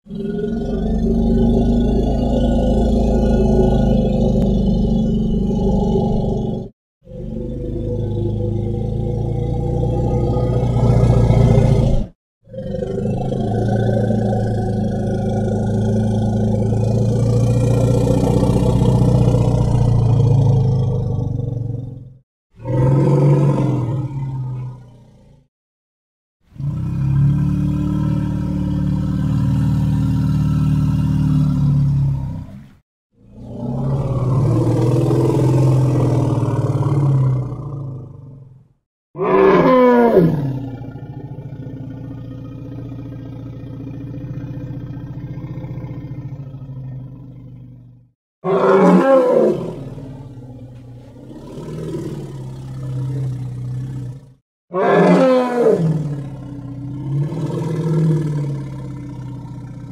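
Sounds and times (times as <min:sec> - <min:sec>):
elephant rumbling calls: 0:39.2 - 0:45.2, 0:48.4 - 0:50.0, 0:54.7 - 0:56.2.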